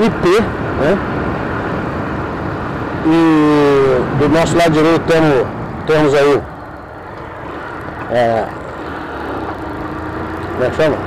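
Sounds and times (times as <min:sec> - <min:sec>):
rider speaking: 0:00.0 - 0:01.1, 0:03.0 - 0:06.8, 0:07.5 - 0:11.0
wind and road noise: 0:00.0 - 0:11.0
motorcycle engine running: 0:03.4 - 0:11.0.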